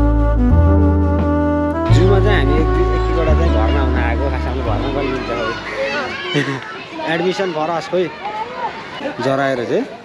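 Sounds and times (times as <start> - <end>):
low musical tone: 0.0 - 6.2
people talking at once: 1.9 - 10.0
children's voices: 3.1 - 9.2.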